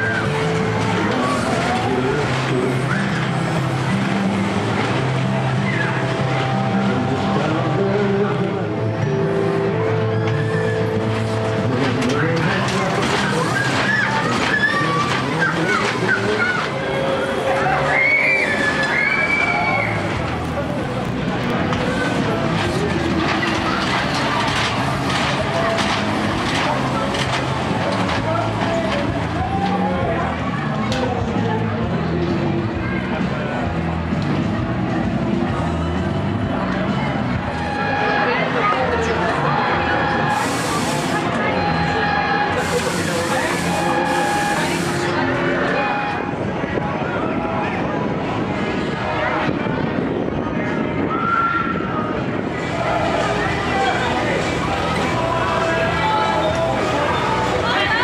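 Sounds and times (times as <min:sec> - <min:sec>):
coaster car clacking on track: 0:00.0 - 0:05.5, 0:10.3 - 0:32.6, 0:36.7 - 0:46.9
ride machinery running: 0:00.0 - 0:50.9
crowd voices: 0:00.0 - 0:58.0.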